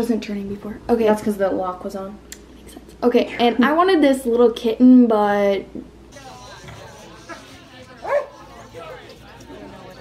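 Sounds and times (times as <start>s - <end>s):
background chatter: 5.5s - 10.0s
dog yipping: 8.0s - 8.4s.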